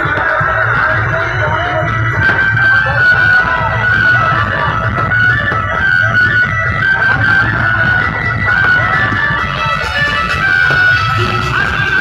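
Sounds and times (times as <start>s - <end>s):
loud dj music with heavy bass: 0.0s - 12.0s.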